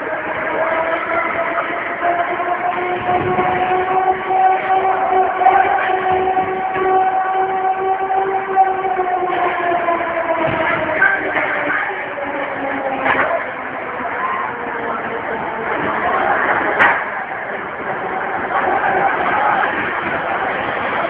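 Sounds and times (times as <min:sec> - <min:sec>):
horn long held note: 0:00.0 - 0:13.4.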